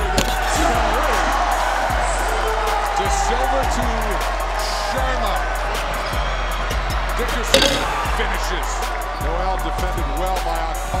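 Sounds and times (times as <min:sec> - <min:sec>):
loud crowd: 0:00.0 - 0:11.0
music: 0:00.0 - 0:11.0.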